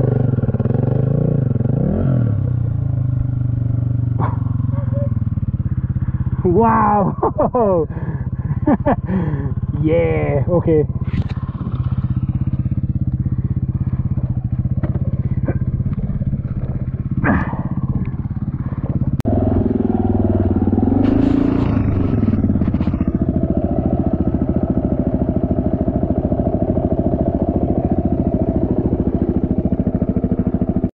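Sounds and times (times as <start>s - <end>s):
dirt bike engine idling and revving: 0.0s - 30.9s.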